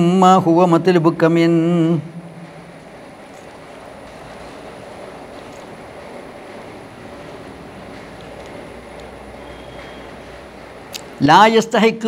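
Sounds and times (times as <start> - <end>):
low background hum: 0.0 - 11.9.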